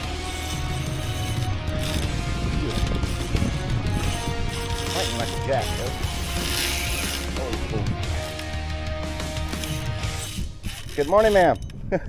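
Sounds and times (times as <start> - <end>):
fishing reel gears whirring: 0.0 - 11.8.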